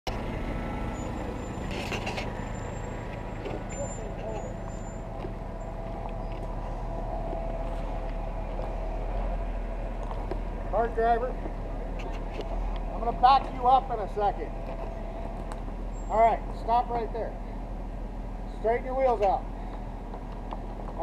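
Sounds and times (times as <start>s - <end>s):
off-road vehicle engine running: 0.1s - 21.0s.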